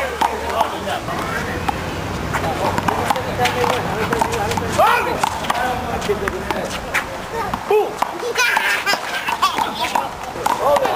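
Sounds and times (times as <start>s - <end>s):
players shouting: 3.6s - 5.7s.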